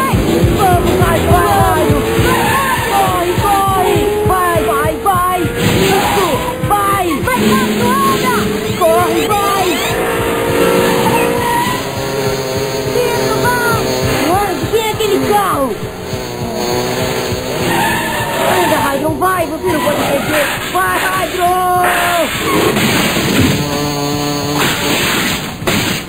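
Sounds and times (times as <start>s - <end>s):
voices shouting: 0.0s - 23.8s
tyre squeals: 0.0s - 25.6s
background music: 0.0s - 26.0s
toy race cars on plastic track: 0.0s - 26.0s.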